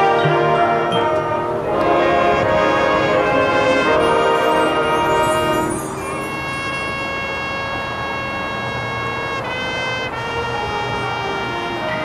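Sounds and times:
marching band playing held chords: 0.0 - 12.0.

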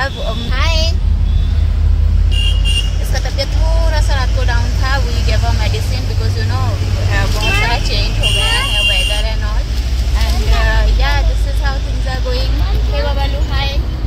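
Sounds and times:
car engine rumble and road noise: 0.0 - 14.0
woman talking: 3.0 - 13.9.

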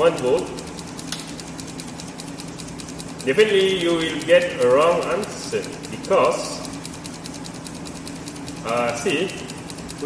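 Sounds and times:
low electrical hum: 0.0 - 10.0
rapid high ticking: 0.0 - 10.0.

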